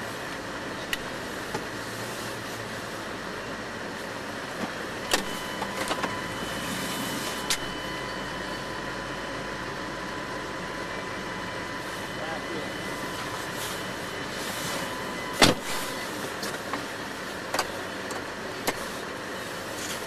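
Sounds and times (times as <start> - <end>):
car engine idling: 0.0 - 20.0
faint steady whine: 0.0 - 20.0.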